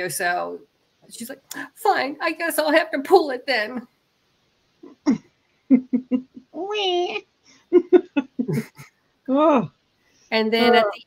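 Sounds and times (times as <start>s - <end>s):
woman laughing: 5.1s - 6.5s, 7.7s - 8.8s.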